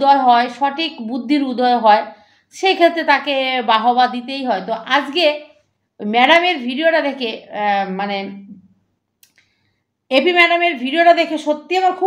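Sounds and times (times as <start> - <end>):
woman speaking: 0.0 - 8.7, 10.1 - 12.0.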